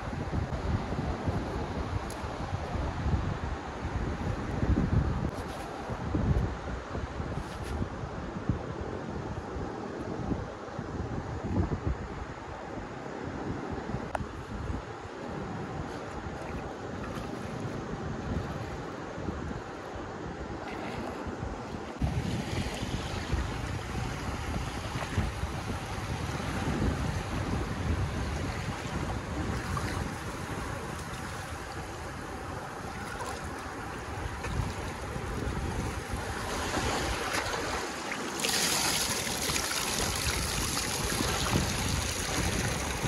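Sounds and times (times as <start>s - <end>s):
wind buffeting microphone: 0.0s - 43.0s
small waves washing: 20.6s - 43.0s.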